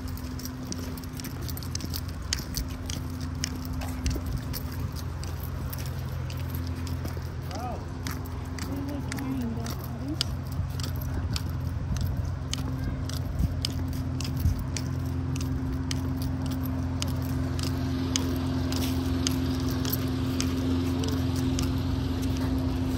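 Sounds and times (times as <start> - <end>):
dog claws clicking on concrete: 0.0 - 22.6
leash hardware and tag jangling: 0.0 - 22.9
steady low hum: 0.0 - 22.9.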